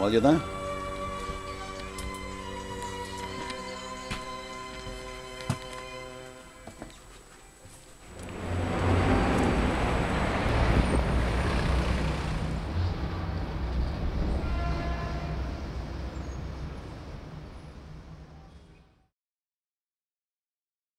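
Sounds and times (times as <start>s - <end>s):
road traffic rumble: 0.0s - 6.5s, 7.5s - 19.0s.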